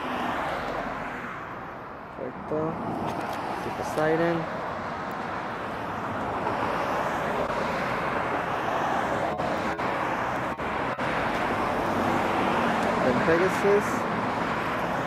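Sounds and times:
cars passing on street: 0.0s - 15.0s.

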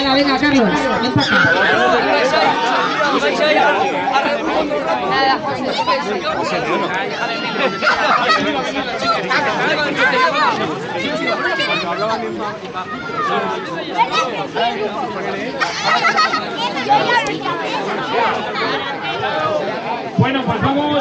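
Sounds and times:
crowd chattering: 0.0s - 21.0s.

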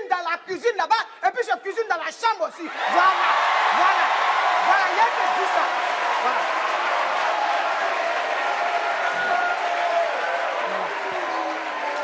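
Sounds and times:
audience applauding: 2.8s - 12.0s.

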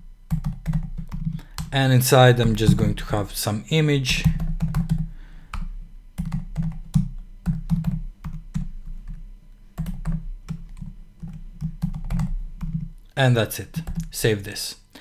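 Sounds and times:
typing on computer keyboard: 0.3s - 1.7s, 4.2s - 9.2s, 9.8s - 12.9s.

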